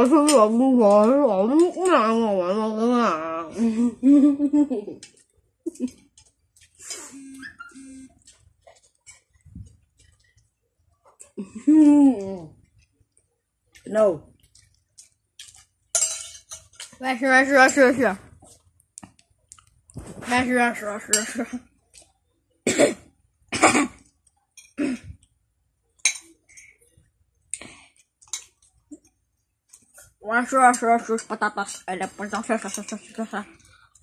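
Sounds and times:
child coughing: 22.6 - 24.0, 24.8 - 25.2.

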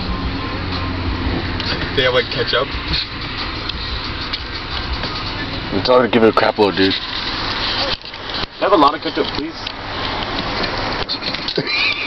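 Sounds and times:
car cabin noise: 0.0 - 12.0
person's squealing stifled laugh: 11.6 - 12.0.

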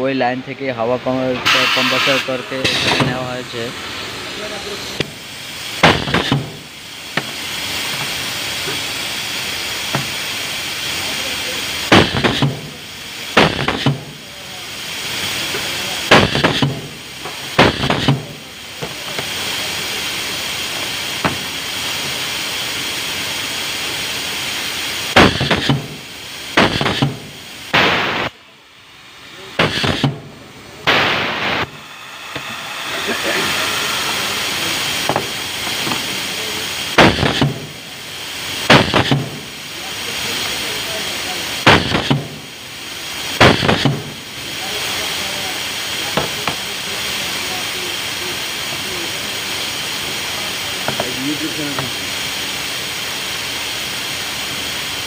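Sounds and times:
compressed air hissing: 0.0 - 55.0
steady hiss: 0.0 - 55.0
pneumatic machine clamping and cutting: 1.4 - 3.2, 5.8 - 6.6, 17.6 - 18.3, 25.2 - 25.9, 26.6 - 27.9, 29.6 - 30.2, 37.0 - 37.7, 38.7 - 39.4.

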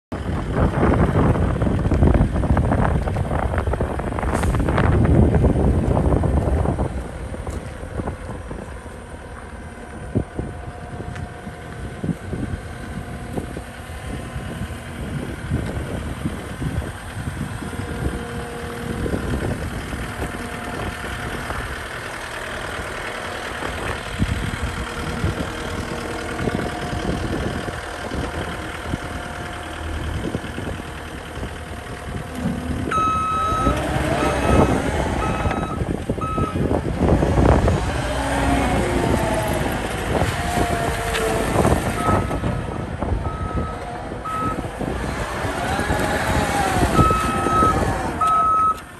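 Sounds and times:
diesel engine running: 0.1 - 48.9
backup alarm beeps: 32.9 - 36.6, 42.0 - 44.6, 47.0 - 48.8.

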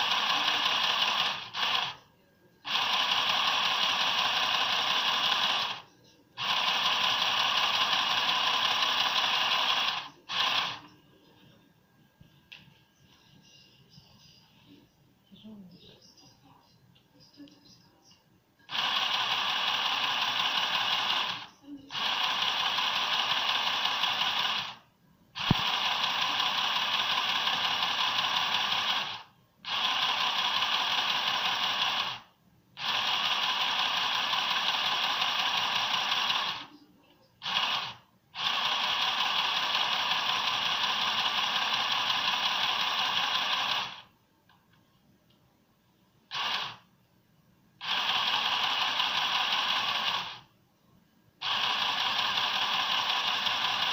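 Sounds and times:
sewing machine stitching: 0.0 - 2.0, 2.7 - 10.9, 18.7 - 24.8, 25.4 - 36.7, 37.4 - 44.1, 46.3 - 46.8, 47.8 - 50.5, 51.4 - 53.9.

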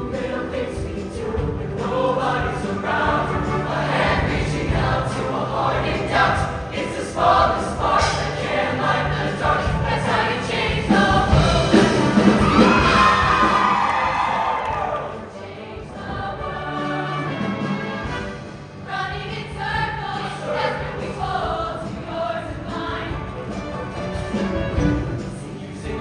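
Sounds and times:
choir singing pop-style song: 0.0 - 26.0.

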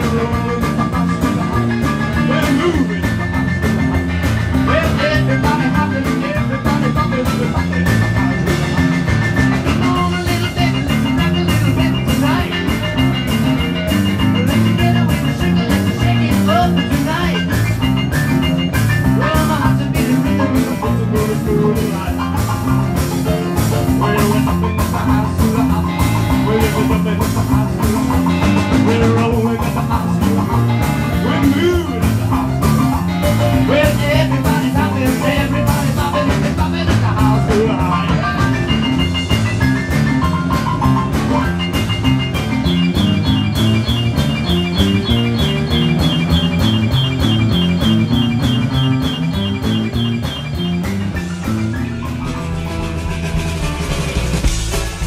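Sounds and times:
live rock band instrumental: 0.0 - 55.0.

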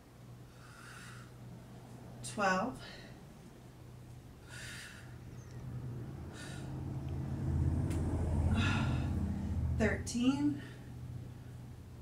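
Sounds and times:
woman breathing hard: 0.4 - 1.5, 4.4 - 5.4, 6.2 - 7.5, 8.4 - 9.8, 10.6 - 11.7
low rumble: 3.1 - 12.0.

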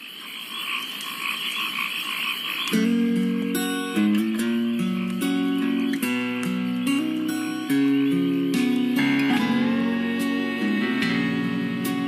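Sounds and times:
frogs croaking: 0.0 - 12.0
acoustic guitar: 2.7 - 12.0.

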